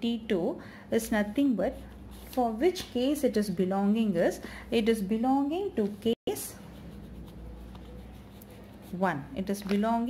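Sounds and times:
low room hum: 0.0 - 10.0
pen scratching on paper: 6.3 - 9.5.

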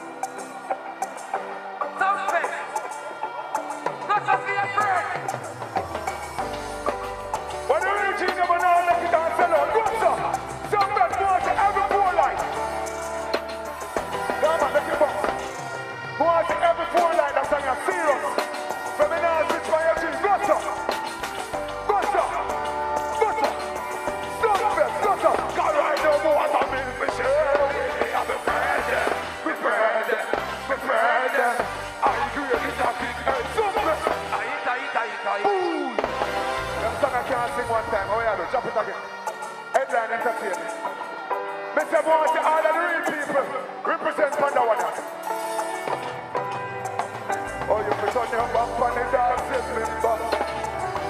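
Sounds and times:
dancehall band backing track: 0.0 - 51.0
man singing and chanting: 21.8 - 36.1.

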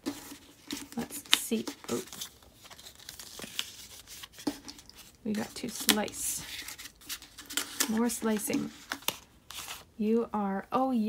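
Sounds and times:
paper packet rustling: 0.0 - 9.9.

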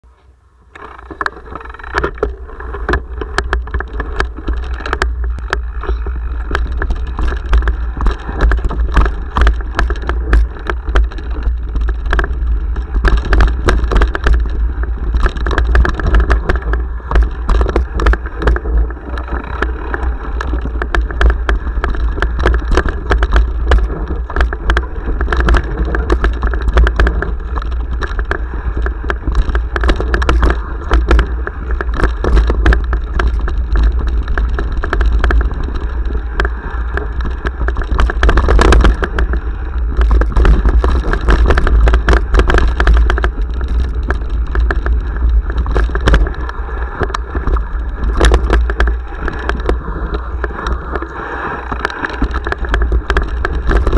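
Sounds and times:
tyres on dirt: 0.0 - 53.9
wind rumble on microphone: 0.0 - 53.9
bike rattling and knocking: 0.7 - 53.9.

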